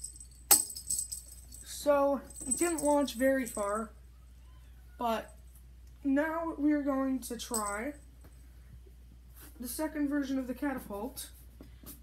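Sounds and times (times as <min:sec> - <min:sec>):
toy jingling rattle: 0:00.0 - 0:03.9, 0:07.4 - 0:08.0.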